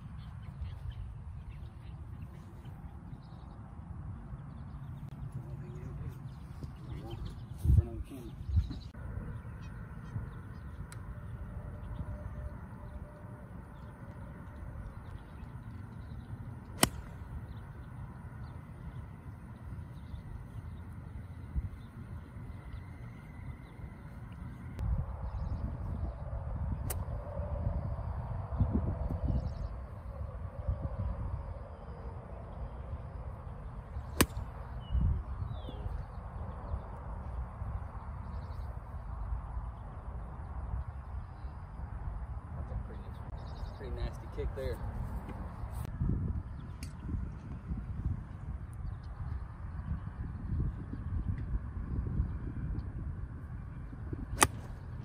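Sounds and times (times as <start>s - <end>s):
steady low rumble: 0.0s - 55.0s
golf club striking ball: 16.7s - 17.3s, 34.2s - 34.5s, 54.4s - 54.8s.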